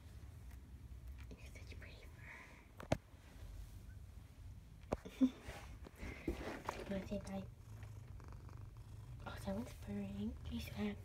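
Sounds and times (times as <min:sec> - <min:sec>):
person whispering: 0:01.2 - 0:02.6.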